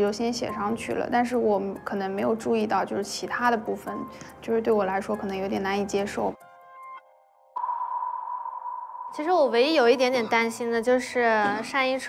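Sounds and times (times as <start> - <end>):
steady high tone: 7.6 - 11.4.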